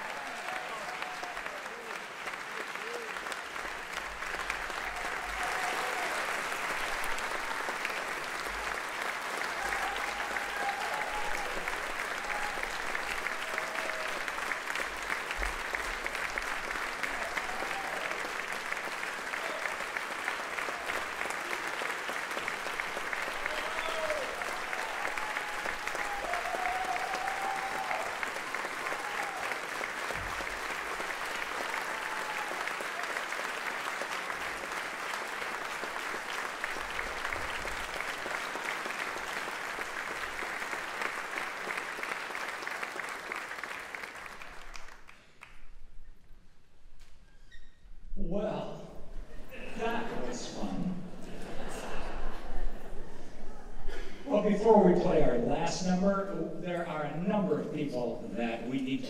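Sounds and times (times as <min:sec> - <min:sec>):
audience applauding: 0:00.0 - 0:46.2.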